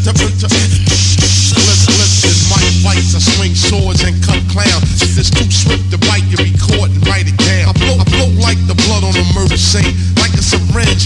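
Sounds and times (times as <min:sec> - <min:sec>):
rapping over a beat: 0:00.0 - 0:11.0.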